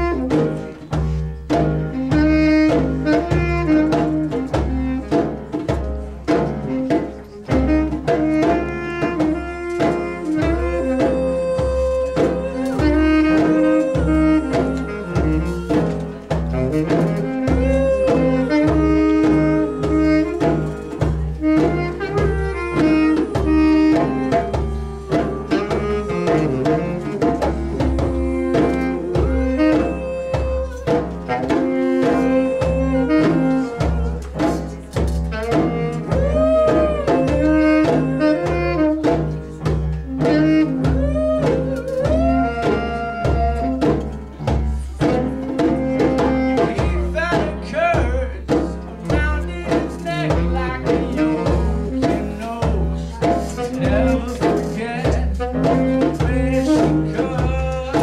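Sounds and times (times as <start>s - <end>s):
tenor saxophone melody: 0.0s - 48.5s, 49.2s - 58.0s
piano: 0.0s - 58.0s
steady drum beat: 0.0s - 58.0s.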